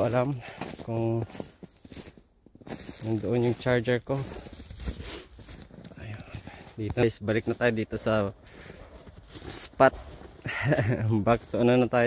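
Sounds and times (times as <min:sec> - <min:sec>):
crinkly rustling: 0:00.0 - 0:12.0
footsteps crunching in snow: 0:00.0 - 0:12.0.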